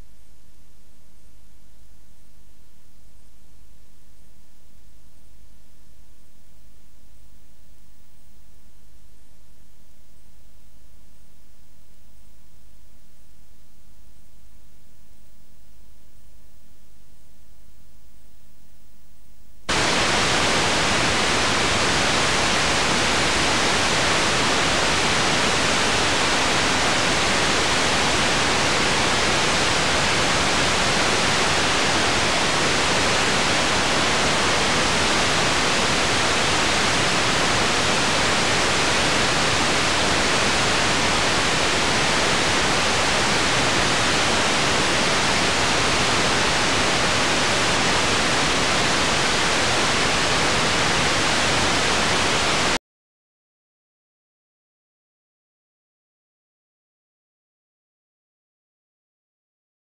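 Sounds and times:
television white noise static: 0.0 - 52.8.

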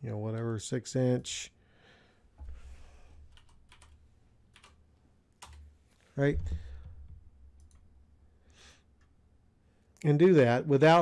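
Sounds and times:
typing on computer keyboard: 3.3 - 4.8, 5.4 - 5.7.

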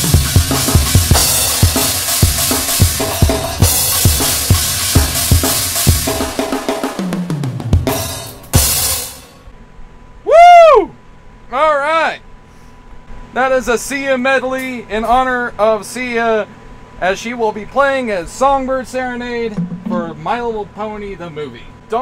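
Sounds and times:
cymbal crash: 0.0 - 9.5
drum kit beat: 0.0 - 9.5, 19.5 - 20.8.

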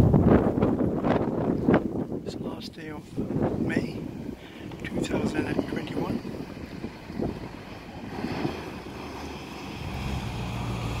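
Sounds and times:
low engine hum: 0.0 - 11.0
wind on microphone: 0.0 - 11.0.

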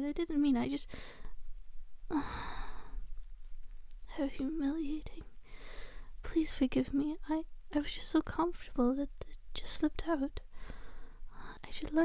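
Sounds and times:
woman sighing: 2.1 - 3.0.

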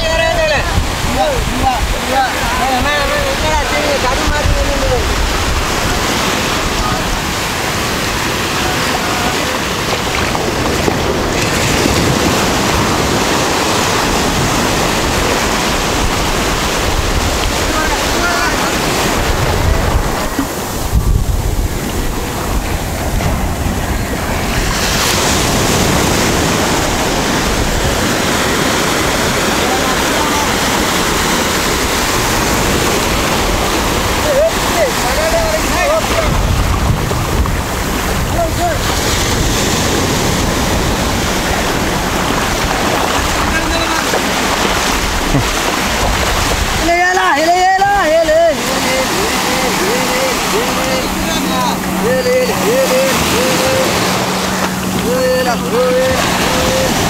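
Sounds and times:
small waves breaking on sand: 0.0 - 57.0
wind buffeting microphone: 0.0 - 57.0.

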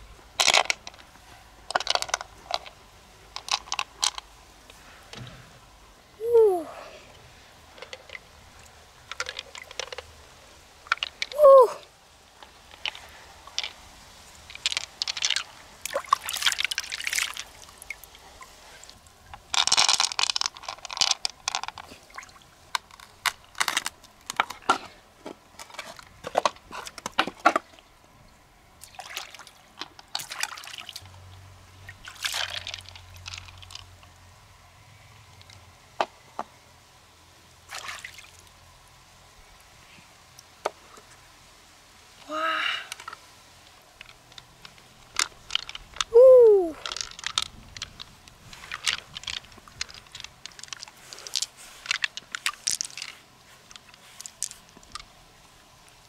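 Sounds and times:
water pouring and dripping: 6.4 - 24.8, 25.5 - 34.2.

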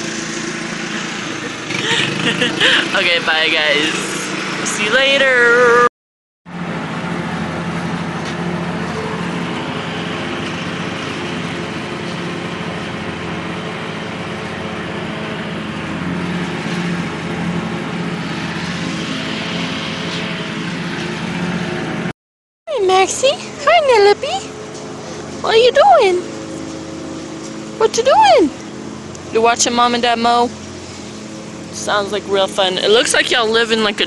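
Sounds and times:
lawn mower engine running: 0.0 - 5.8, 6.5 - 22.1, 22.7 - 34.0.

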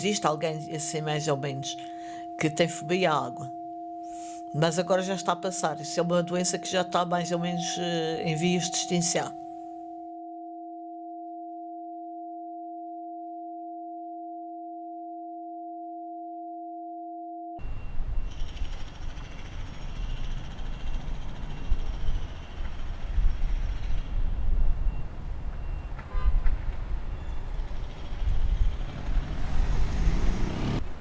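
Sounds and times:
electronic two-tone hum: 0.0 - 17.7.

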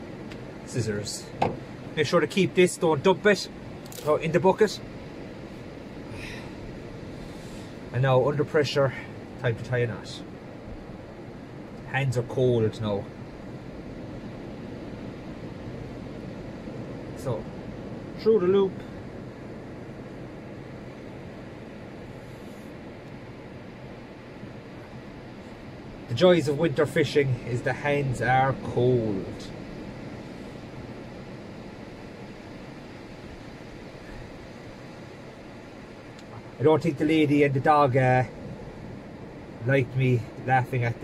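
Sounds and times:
surf: 0.0 - 41.0
wind: 0.0 - 41.0.

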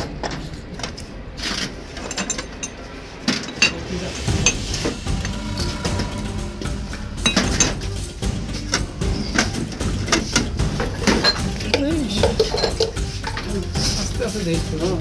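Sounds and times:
background music: 2.6 - 15.0
ceramic mugs clinking: 11.0 - 13.4.

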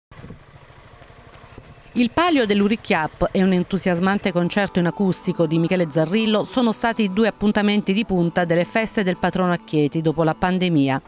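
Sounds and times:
engine rumbling: 0.1 - 10.8
faint street noise: 0.1 - 11.0.

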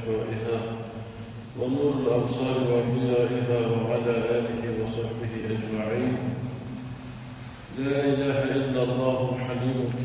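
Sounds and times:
man chanting melodically: 0.0 - 1.0, 1.6 - 6.4.

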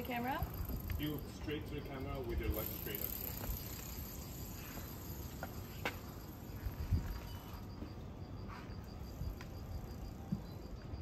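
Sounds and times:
high-pitched insect-like buzz: 0.0 - 11.0
quiet street ambience: 0.0 - 11.0.

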